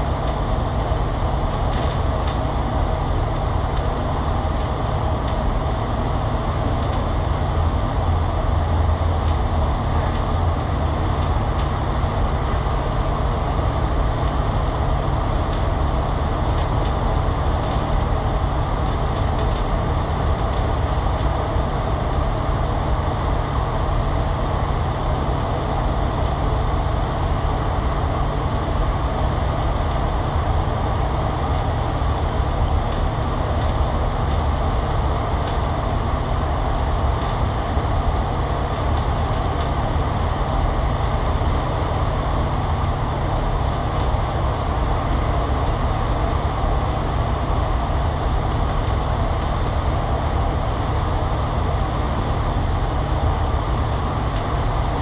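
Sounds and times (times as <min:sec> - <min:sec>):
bus engine and tyre rumble: 0:00.0 - 0:55.0.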